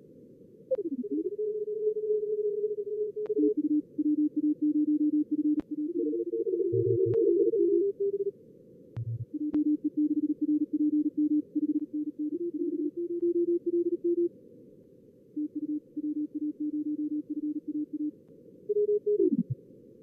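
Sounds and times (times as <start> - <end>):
morse code tones: 9.0 - 14.3, 15.4 - 18.1.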